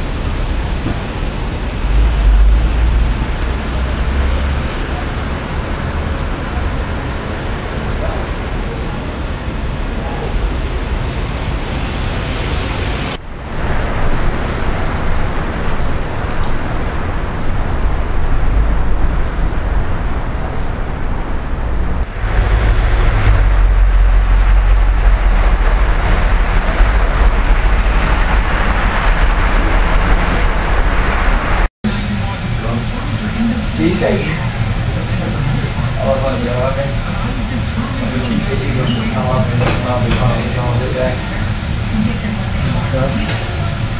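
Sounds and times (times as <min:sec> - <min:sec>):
city street traffic rumble: 0:00.0 - 0:43.9.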